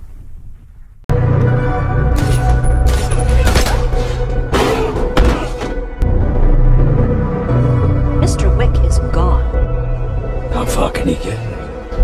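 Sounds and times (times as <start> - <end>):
film trailer music: 1.1 - 12.0.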